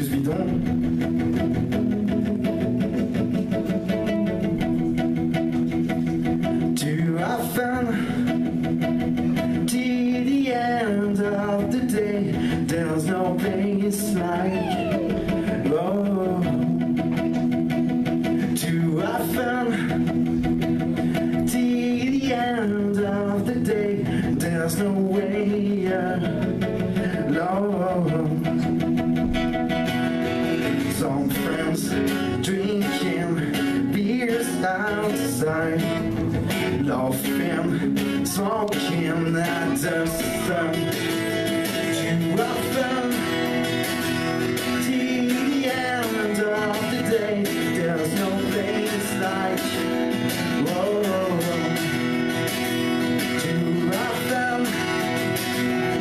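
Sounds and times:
man singing into a microphone: 0.0 - 2.2, 6.5 - 29.0, 30.5 - 56.0
acoustic guitar strumming: 0.0 - 56.0.

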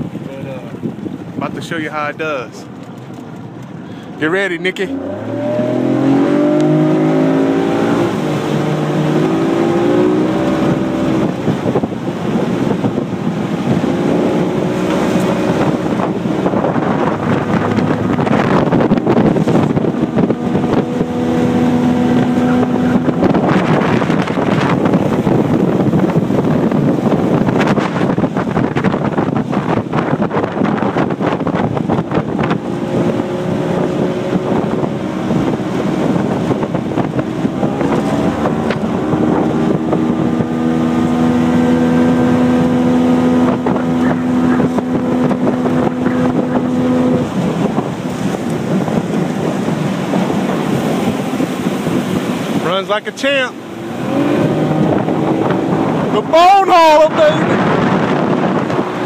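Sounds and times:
outboard motor running: 0.0 - 59.0
rushing water: 0.0 - 59.0
wind on microphone: 0.0 - 59.0.

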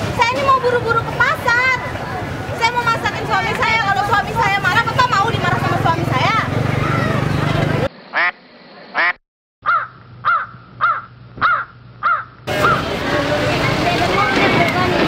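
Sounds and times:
voices talking: 0.0 - 8.4, 12.5 - 15.0
animal calls rising and falling: 8.1 - 12.9.

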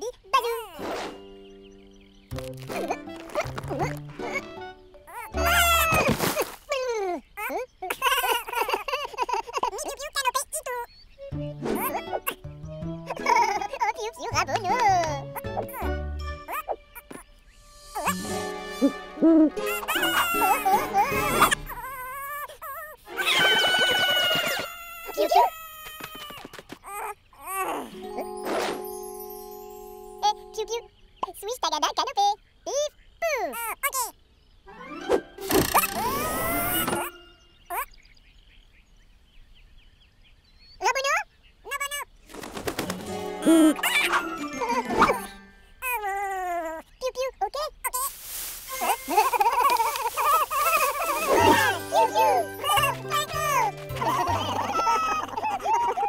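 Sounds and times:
light music: 0.7 - 6.0, 11.2 - 21.9, 27.9 - 31.0, 34.7 - 37.5, 42.8 - 45.8, 48.4 - 56.0
cartoon sound effects: 2.7 - 6.2, 17.9 - 22.1, 34.9 - 37.8, 43.4 - 45.5, 48.7 - 56.0
cooing cartoon voices babbling: 2.8 - 6.1, 6.7 - 10.9, 18.0 - 28.3, 35.8 - 37.9, 43.4 - 48.1, 48.8 - 56.0.

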